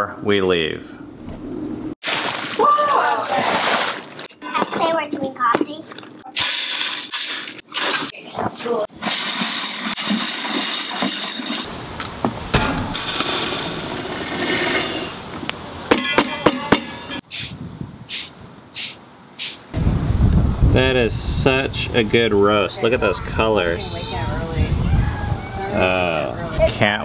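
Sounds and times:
coffee beans pouring into metal pot: 9.0s - 11.6s.

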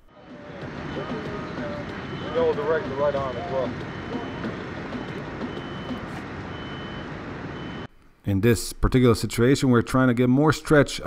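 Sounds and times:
traffic hum: 0.0s - 10.3s
faint high beeps: 0.8s - 7.9s.

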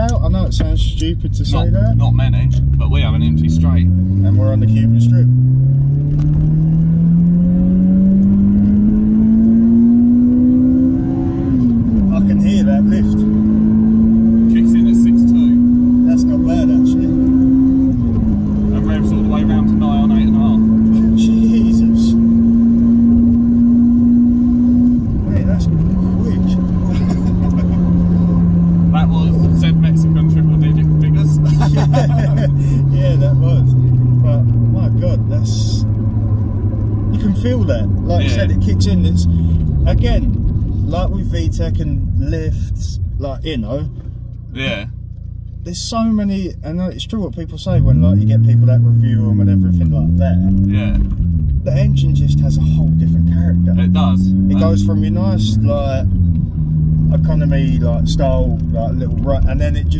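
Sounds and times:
car engine revving through gears: 0.0s - 59.9s.

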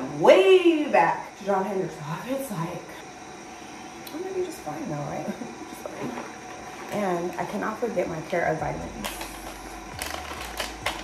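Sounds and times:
plastic packet crinkling: 9.1s - 11.0s.

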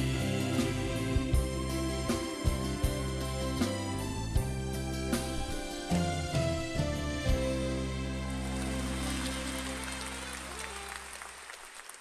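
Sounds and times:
audience applause: 8.1s - 12.0s.

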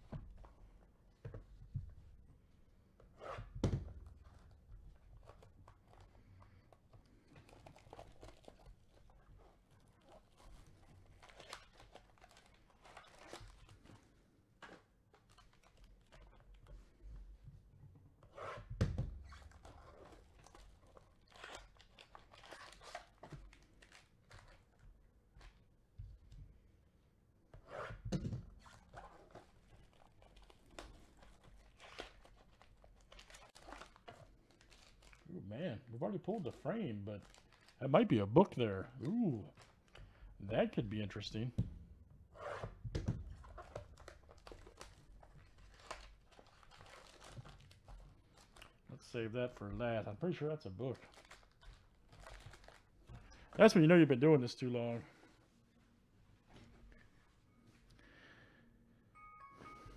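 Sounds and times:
wrapper and cardboard tearing: 7.2s - 14.2s, 15.1s - 16.6s, 18.3s - 24.8s, 28.6s - 41.5s, 43.3s - 48.8s, 50.1s - 53.8s.

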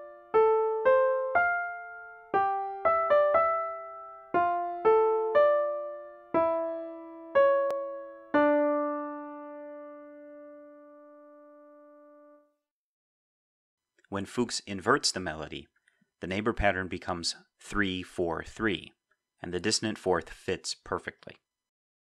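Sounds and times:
piano counterpoint: 0.0s - 12.4s.

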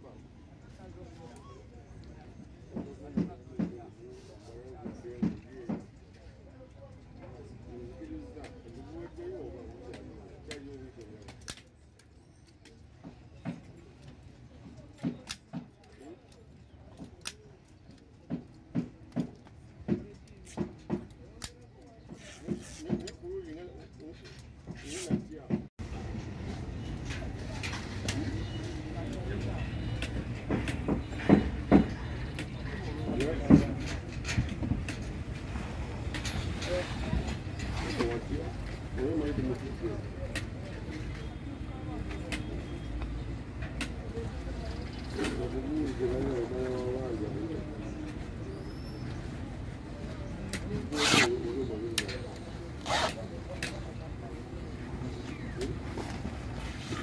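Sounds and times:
voices: 0.0s - 57.0s.

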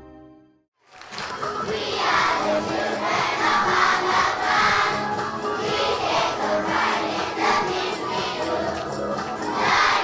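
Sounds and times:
crowd singing together: 1.6s - 10.0s.

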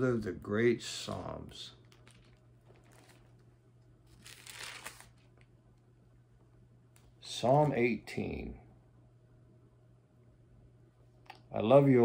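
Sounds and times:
low room hum: 0.0s - 12.0s
paper pages rustling: 1.8s - 5.5s.

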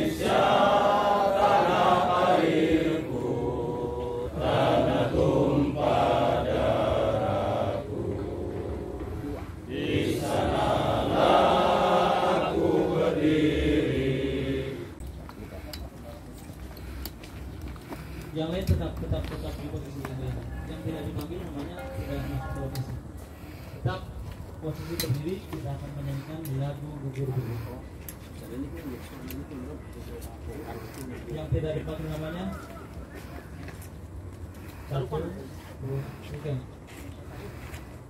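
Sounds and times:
men chanting in unison: 0.0s - 15.0s
people talking quietly: 0.0s - 38.0s.

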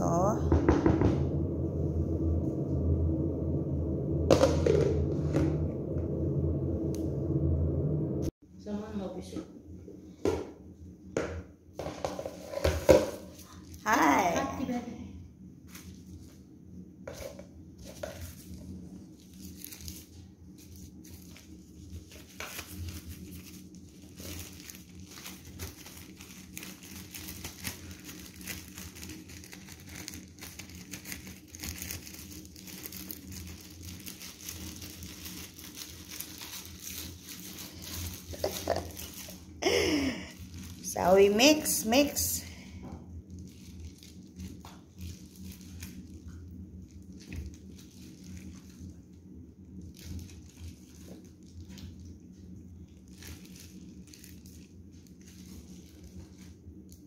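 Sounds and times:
plastic crinkling: 12.2s - 14.0s, 15.6s - 16.5s, 17.1s - 42.4s, 43.1s - 57.0s.

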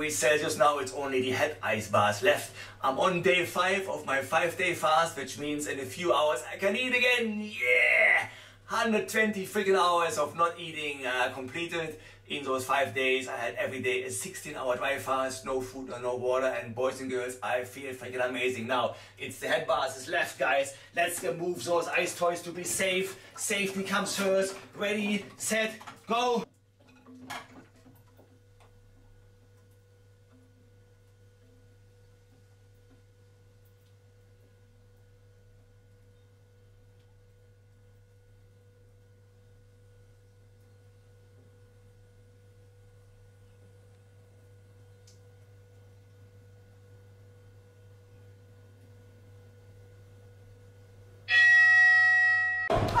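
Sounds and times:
steady low hum: 0.0s - 26.8s
water ticking: 22.8s - 38.2s
bell ringing: 51.3s - 53.0s.

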